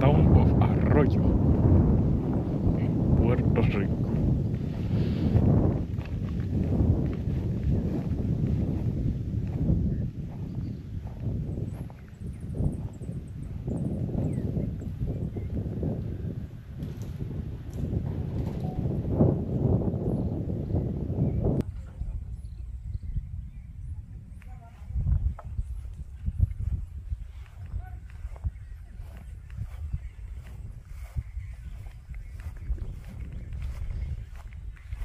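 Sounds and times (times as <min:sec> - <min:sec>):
wind noise on microphone: 0:00.0 - 0:35.0.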